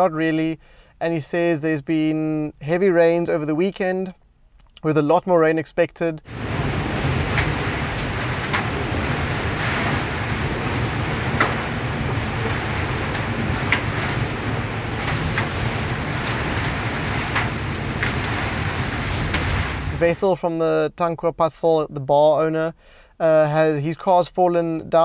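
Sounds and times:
heavy rain pouring: 6.3 - 20.2
wind rumble on microphone: 6.3 - 20.2.

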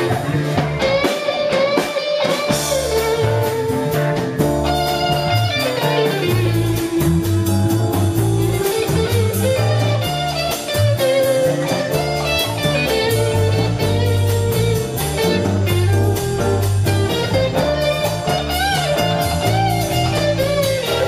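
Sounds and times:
bass line: 0.0 - 21.0
drum beat on cymbals: 0.0 - 21.0
electric guitar melody: 0.0 - 21.0
keyboard melody: 0.0 - 21.0.

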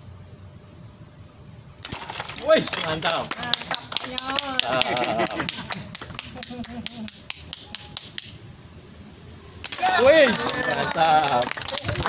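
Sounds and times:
people clapping: 2.5 - 8.3, 9.9 - 12.0.

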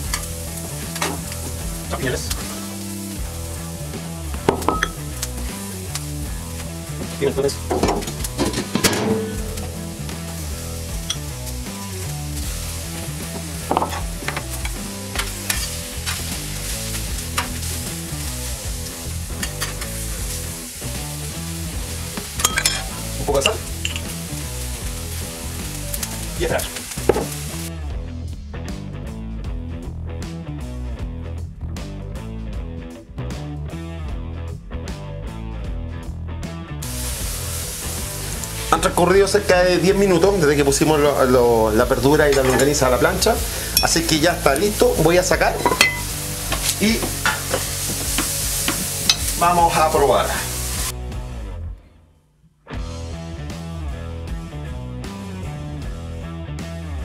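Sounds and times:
food sizzling on a griddle: 0.0 - 7.0, 9.4 - 27.7, 36.8 - 51.0.

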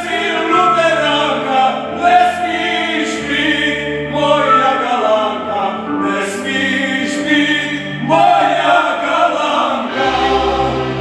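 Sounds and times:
men singing folk song: 0.0 - 11.0.

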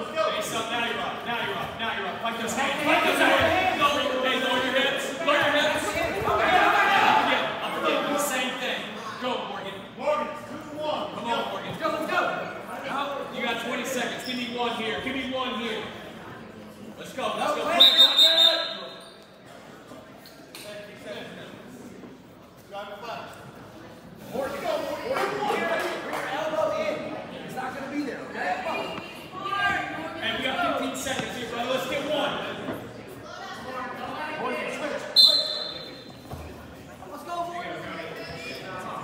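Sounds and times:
quiet hubbub: 0.0 - 39.0
voices shouting in gymnasium: 2.3 - 15.9, 17.4 - 19.3, 28.5 - 36.2
sharp whistle blast: 17.8 - 19.0, 35.2 - 36.0.

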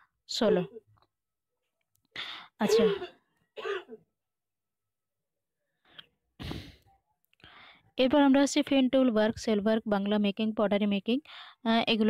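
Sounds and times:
person clearing throat: 2.6 - 4.0.

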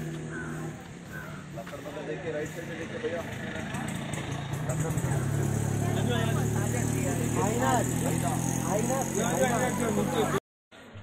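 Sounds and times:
engine running: 0.0 - 10.4
people talking: 1.6 - 10.4.

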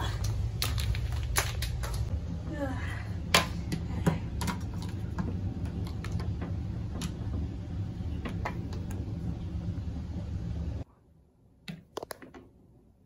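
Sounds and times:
steady low hum: 0.0 - 11.6.

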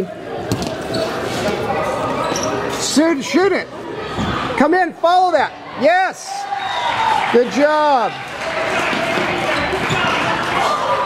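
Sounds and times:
people shouting and chattering: 0.0 - 11.0.

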